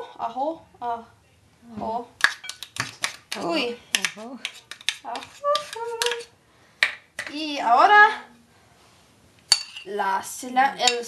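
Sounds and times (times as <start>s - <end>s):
person speaking: 1.6s - 6.3s.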